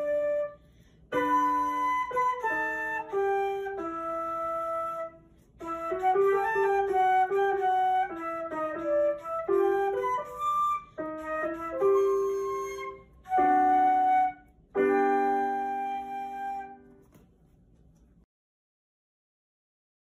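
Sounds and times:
digital piano: 0.0s - 0.2s, 1.1s - 5.0s, 5.7s - 17.0s
flute: 0.0s - 17.2s.

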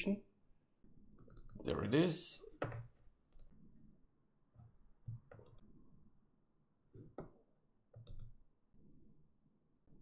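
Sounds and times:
computer mouse clicks: 1.2s - 1.6s, 2.6s - 3.6s, 5.1s - 5.7s, 7.0s - 8.4s.

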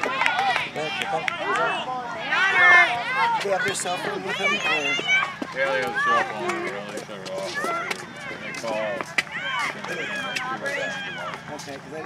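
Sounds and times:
people talking: 0.0s - 12.0s.

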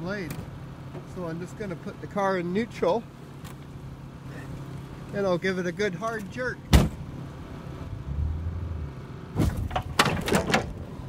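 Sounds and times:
car clunking off plow blade: 6.1s - 7.1s, 9.3s - 11.0s.

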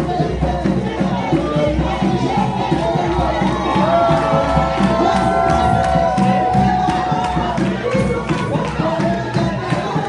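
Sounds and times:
crowd shouting and cheering: 0.0s - 10.0s
loud dance music: 0.0s - 10.0s.

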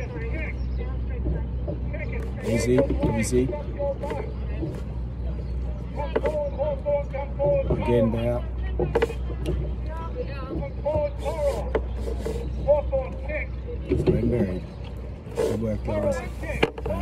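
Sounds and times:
voices in broken phrases: 0.0s - 17.0s.

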